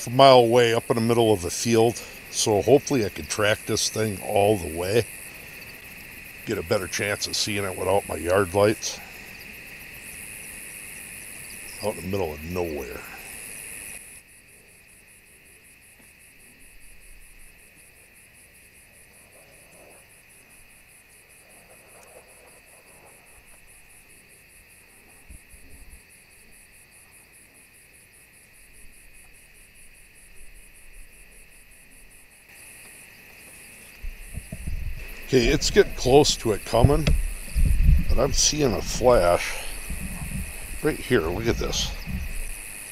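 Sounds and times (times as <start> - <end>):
crickets trilling: 0.0 - 42.9.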